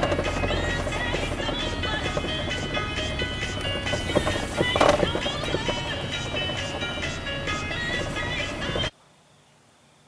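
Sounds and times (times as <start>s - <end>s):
music playing: 0.0s - 8.9s
car driving hum: 0.0s - 9.0s.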